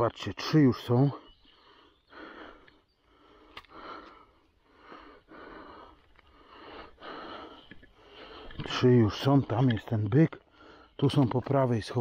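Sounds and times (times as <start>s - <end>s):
man breathing close to microphone: 1.5s - 8.7s, 10.4s - 11.0s.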